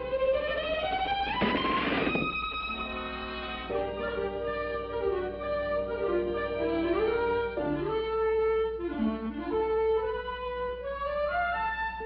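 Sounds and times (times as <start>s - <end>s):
orchestral wind instrument melody: 1.6s - 12.0s.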